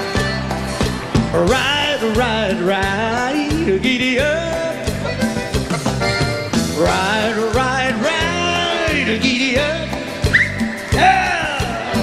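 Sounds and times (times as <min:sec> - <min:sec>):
cumbia band playing: 0:00.0 - 0:12.0.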